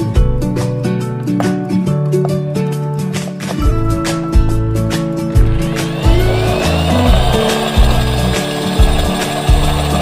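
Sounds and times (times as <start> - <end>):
background music with steady beat: 0.0 - 10.0
electric drill whining: 5.3 - 10.0
drill bit grinding ceramic: 5.4 - 10.0.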